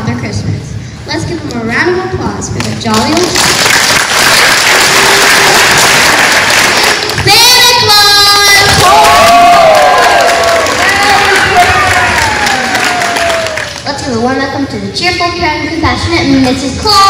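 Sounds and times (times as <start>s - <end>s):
audience applauding and cheering: 3.4s - 7.3s, 8.4s - 13.9s.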